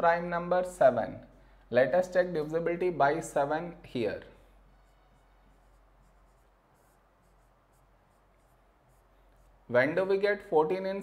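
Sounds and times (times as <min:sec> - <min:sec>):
pen scratching on board: 0:04.7 - 0:09.6.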